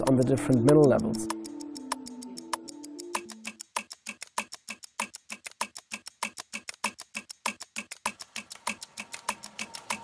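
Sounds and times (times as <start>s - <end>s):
ticking beat music: 0.0s - 10.0s.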